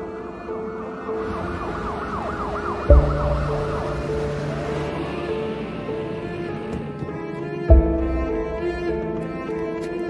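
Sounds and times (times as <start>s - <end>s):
ambulance siren yelping: 0.0s - 6.8s
string film score music: 0.0s - 10.0s.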